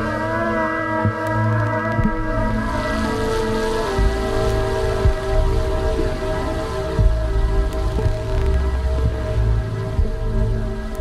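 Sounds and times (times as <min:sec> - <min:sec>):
rain-like hiss: 0:00.0 - 0:11.0
synthesizer drone tones: 0:00.0 - 0:11.0.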